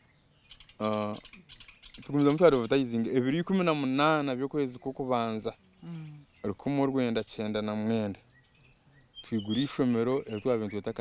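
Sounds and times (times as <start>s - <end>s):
faint bird chirps: 0.0s - 11.0s
man talking: 0.8s - 1.2s, 2.0s - 5.6s, 6.4s - 8.2s, 9.2s - 11.0s.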